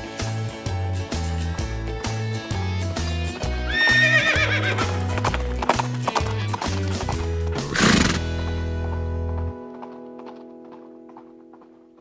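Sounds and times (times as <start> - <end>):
background music with bass line: 0.0 - 9.6
clip-clopping hoofbeats: 3.0 - 12.0
horse whinny: 3.7 - 5.0, 7.7 - 8.4.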